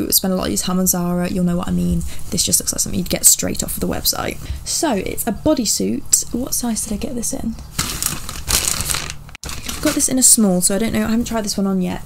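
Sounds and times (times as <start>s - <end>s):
tissue paper and clothing rustling: 7.7s - 11.1s.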